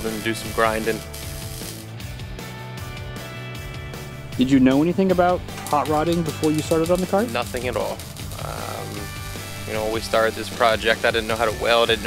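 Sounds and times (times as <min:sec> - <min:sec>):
welder crackling: 0:00.0 - 0:02.5, 0:04.1 - 0:12.0.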